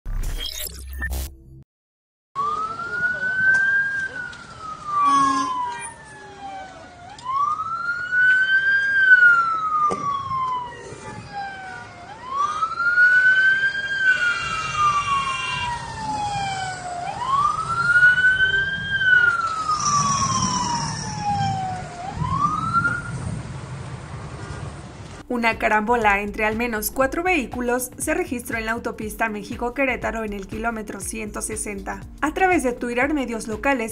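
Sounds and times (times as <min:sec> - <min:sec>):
emergency vehicle siren wailing: 0:02.4 - 0:24.8.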